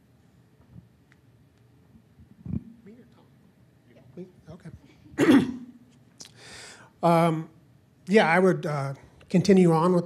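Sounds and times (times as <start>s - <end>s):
man clearing his throat: 4.8s - 5.8s.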